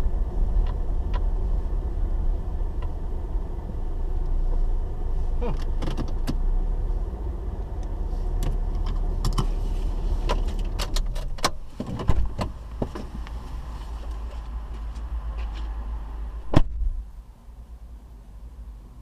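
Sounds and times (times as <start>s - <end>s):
car engine idling: 0.0s - 19.0s.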